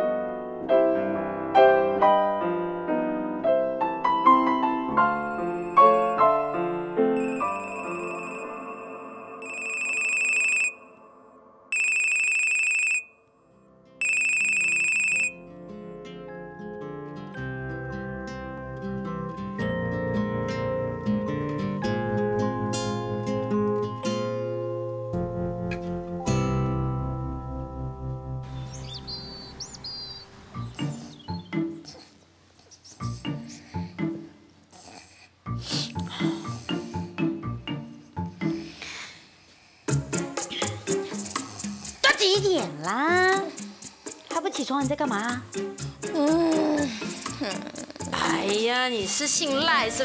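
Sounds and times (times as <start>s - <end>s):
piano music: 0.0s - 11.8s, 13.2s - 31.9s, 35.5s - 38.8s, 39.9s - 50.0s
mobile phone ringing: 5.2s - 11.0s, 11.7s - 13.2s, 14.0s - 15.4s
birds chirping and trilling: 28.4s - 31.8s.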